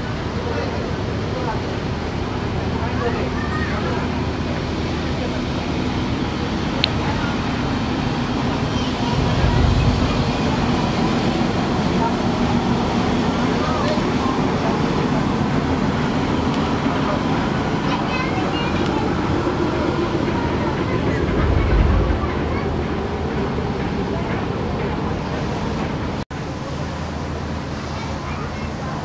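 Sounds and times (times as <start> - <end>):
water wash: 0.0 - 15.3
boat engines droning: 0.0 - 29.0
brief low rumbles: 8.8 - 11.1, 21.2 - 23.6.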